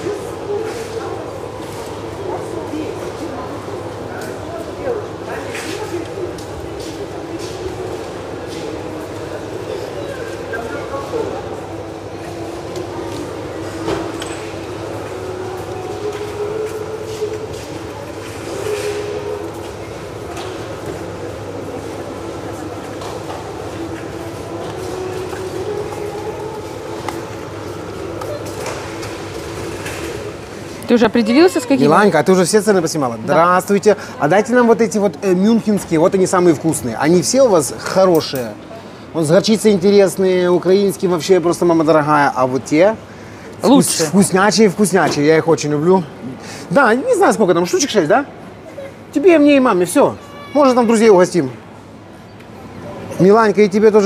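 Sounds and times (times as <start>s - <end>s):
shoppers murmuring: 0.0s - 54.0s.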